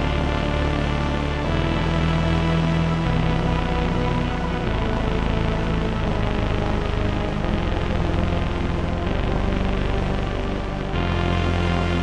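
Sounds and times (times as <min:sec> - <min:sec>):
synthesizer low drone with reverb: 0:00.0 - 0:12.0.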